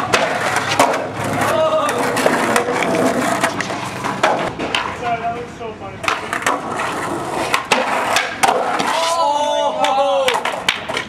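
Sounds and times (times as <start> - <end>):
skateboard clacks: 0.0 - 11.0
skateboard wheels rolling on concrete: 0.0 - 11.0.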